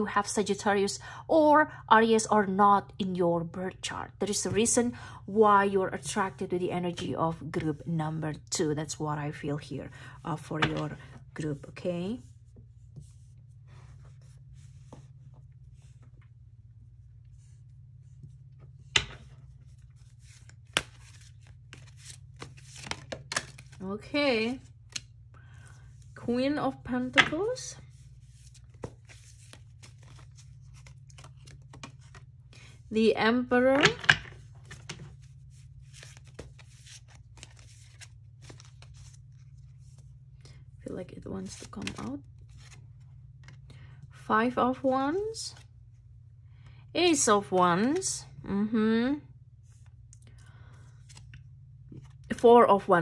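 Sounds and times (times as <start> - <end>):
steady low hum: 0.0 - 53.0
cards shuffling: 18.2 - 23.8, 24.6 - 25.7, 27.9 - 32.8, 33.8 - 40.1, 41.4 - 42.8.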